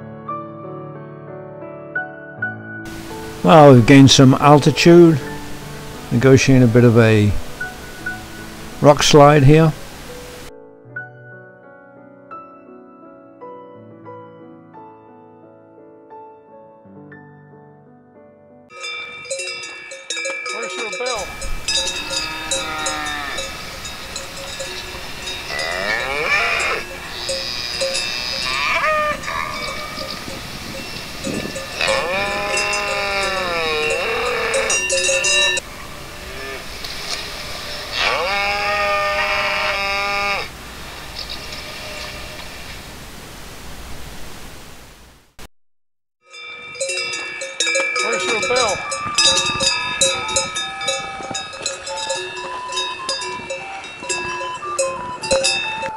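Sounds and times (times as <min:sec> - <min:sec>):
cowbells clanking: 0:18.7 - 0:35.7, 0:46.3 - 0:55.9
cattle calling: 0:20.5 - 0:40.5.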